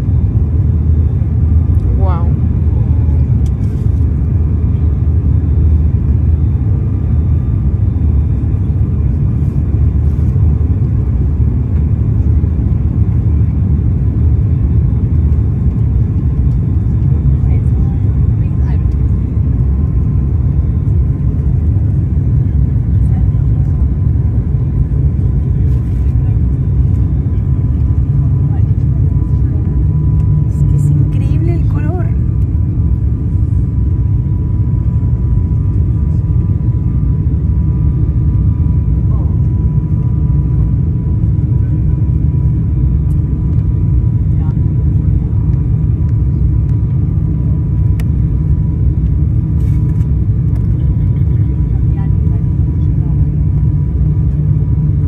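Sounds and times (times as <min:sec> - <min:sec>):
turboprop engine drone: 0:00.0 - 0:55.0.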